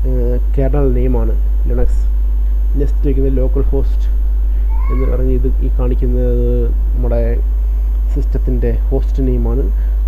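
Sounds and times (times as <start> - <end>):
loud low electrical hum: 0.0 - 10.0
man's voice: 4.9 - 7.4.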